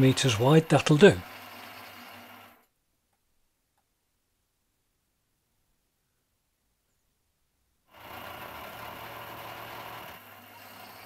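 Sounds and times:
man speaking: 0.0s - 1.2s.

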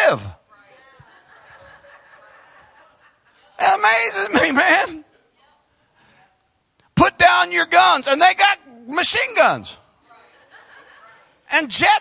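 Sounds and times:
faint laughter: 0.9s - 3.6s.

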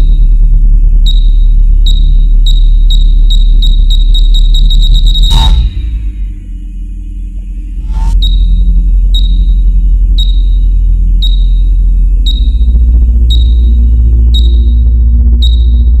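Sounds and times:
deep bass drone: 0.0s - 16.0s.

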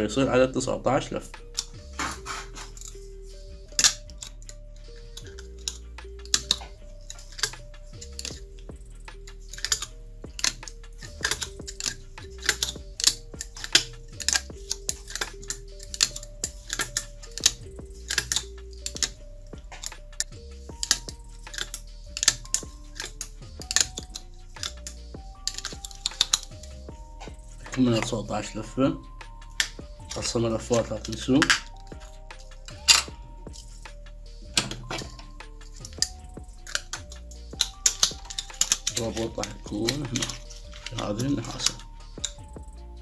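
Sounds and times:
background music with simple melody: 0.0s - 43.0s
wire clicking into slots: 1.3s - 43.0s.

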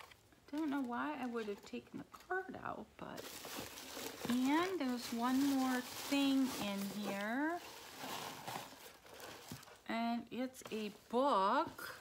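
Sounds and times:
paper and packaging rustling: 0.0s - 2.5s, 3.1s - 9.9s.

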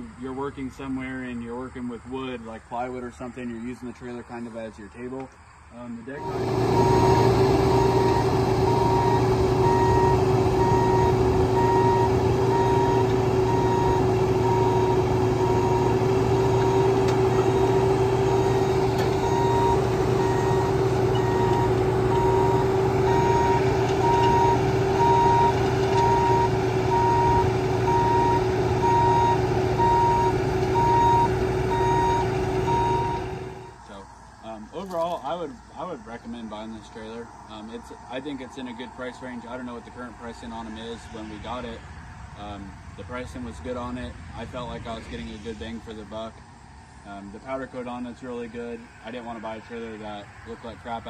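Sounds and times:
excavator engine and hydraulics: 6.0s - 41.7s
travel alarm beeping: 6.2s - 33.8s.

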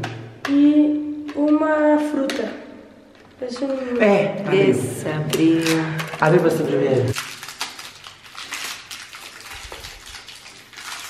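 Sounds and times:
plastic wrapper crinkling: 5.3s - 11.0s.

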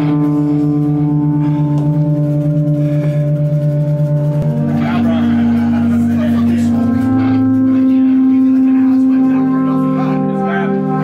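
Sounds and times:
band playing droning chord: 0.0s - 11.0s.

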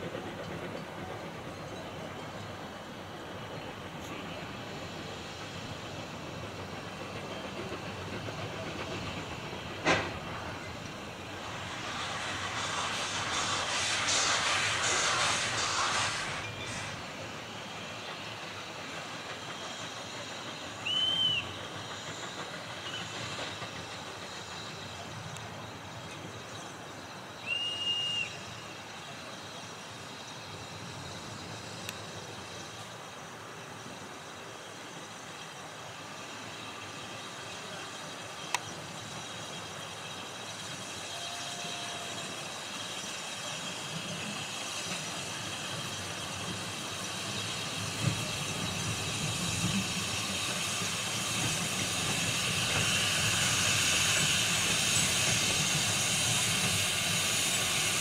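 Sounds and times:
steam locomotive hissing and working: 0.0s - 58.0s
steam locomotive whistle toots: 20.7s - 21.8s, 27.4s - 28.8s, 40.9s - 42.5s.

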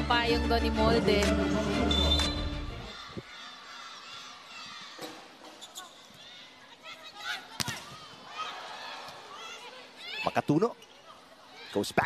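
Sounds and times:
background music: 0.0s - 3.0s
arena crowd noise: 0.0s - 12.0s.

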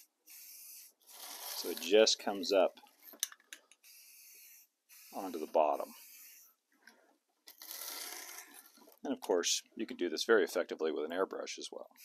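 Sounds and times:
spray-paint can hissing: 0.0s - 1.9s, 3.8s - 6.5s.

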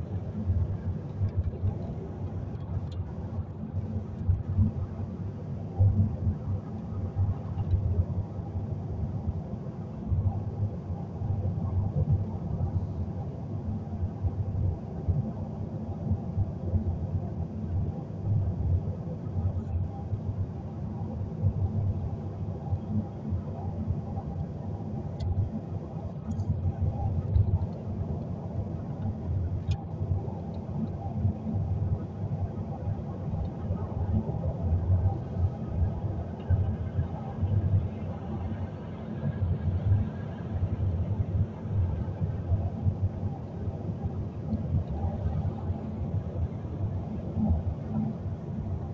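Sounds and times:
car road and engine rumble: 0.0s - 48.9s.

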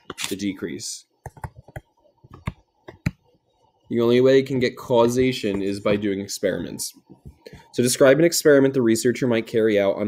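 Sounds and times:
stylus tapping on tablet screen: 1.2s - 3.4s, 5.0s - 6.0s, 7.0s - 7.8s.

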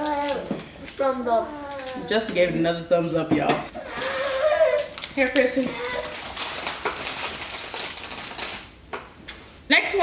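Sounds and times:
woman speaking: 2.0s - 3.7s, 5.1s - 6.1s, 9.7s - 10.0s
plastic wrappers crinkling: 3.7s - 8.8s.

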